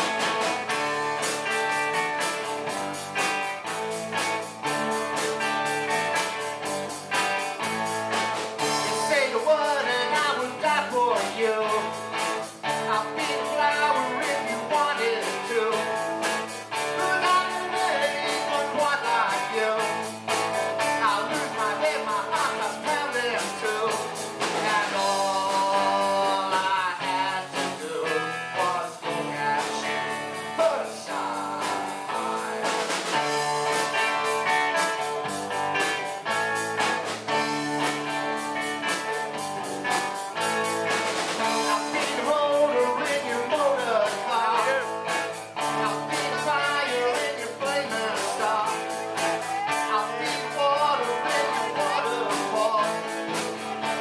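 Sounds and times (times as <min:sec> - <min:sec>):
drums: 0:00.0 - 0:54.0
electric guitars: 0:00.0 - 0:54.0
person singing: 0:08.6 - 0:40.8, 0:41.4 - 0:54.0.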